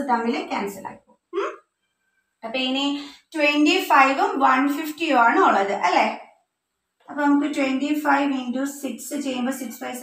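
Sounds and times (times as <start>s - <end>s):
woman speaking: 0.0s - 1.5s, 2.4s - 6.3s, 7.1s - 10.0s
woman questioning hmm: 1.4s - 1.6s.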